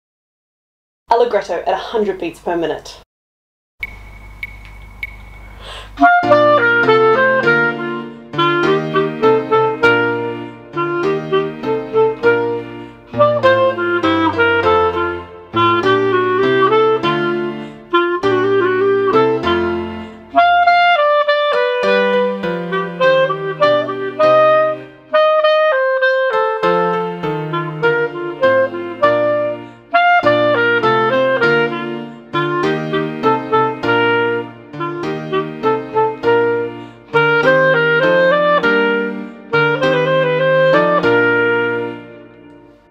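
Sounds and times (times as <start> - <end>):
piano accompaniment: 3.8 - 42.9
clarinet melody: 4.4 - 42.9.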